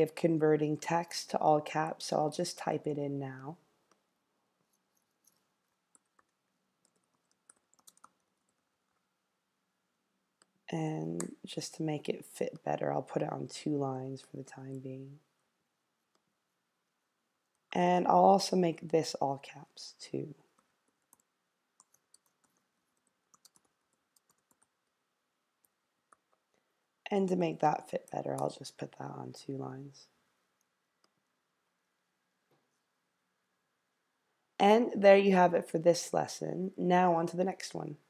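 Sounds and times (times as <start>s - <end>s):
faint keyboard typing: 3.8s - 9.1s, 20.4s - 25.0s, 25.6s - 26.6s.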